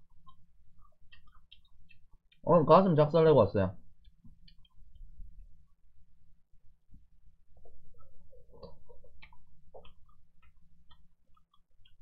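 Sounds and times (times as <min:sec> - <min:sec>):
mouth clicks and smacks: 0:00.0 - 0:02.4, 0:07.6 - 0:12.0
person chewing: 0:00.0 - 0:02.4, 0:07.6 - 0:12.0
low steady hum: 0:00.0 - 0:12.0.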